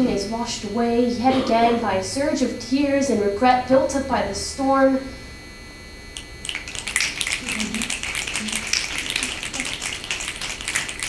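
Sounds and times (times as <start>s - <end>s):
audience snapping fingers: 6.4s - 11.0s.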